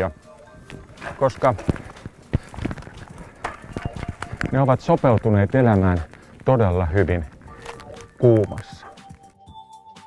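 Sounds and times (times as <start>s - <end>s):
cleated shoes on gravel: 0.5s - 9.2s.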